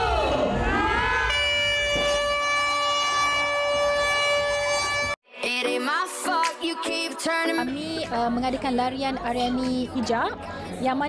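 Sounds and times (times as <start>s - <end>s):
crowd whooping: 0.0s - 1.5s
air horn blast: 1.3s - 5.2s.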